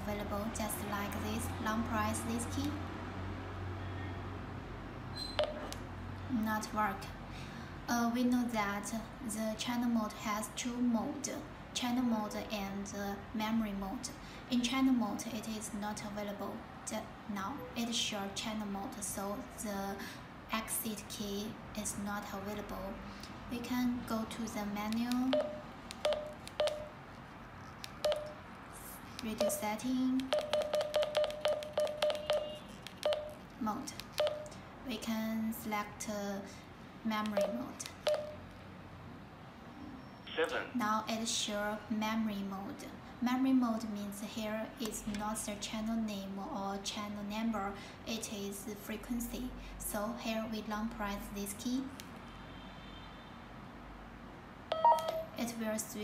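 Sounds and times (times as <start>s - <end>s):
handheld radio keypad beeps: 5.3s - 5.7s, 25.3s - 27.0s, 28.0s - 28.4s, 29.4s - 33.4s, 34.1s - 34.5s, 37.3s - 38.4s, 54.7s - 55.4s
button clicks: 5.4s - 5.8s, 54.7s - 55.4s
radio multi-tone beep: 54.7s - 55.3s.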